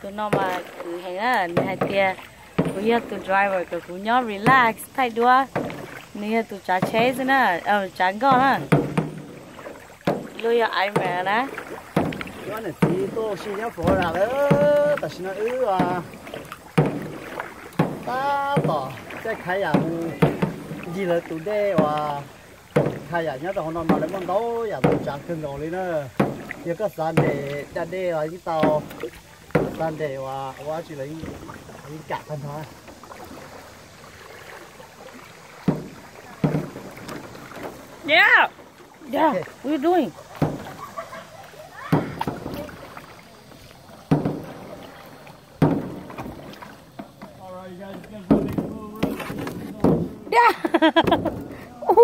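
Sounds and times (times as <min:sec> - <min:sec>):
paddle knocking on kayak: 0:00.0 - 0:52.0
rush of water and air: 0:00.0 - 0:52.0.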